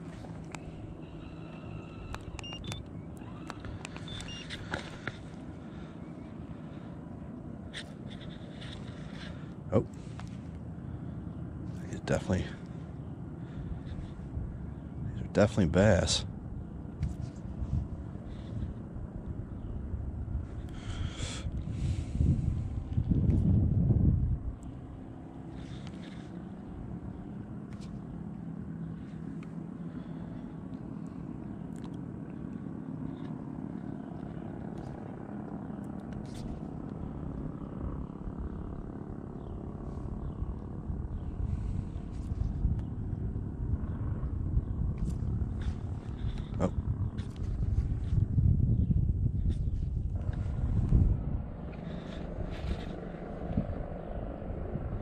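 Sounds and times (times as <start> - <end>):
wind rumbling on microphone: 0.0 - 55.0.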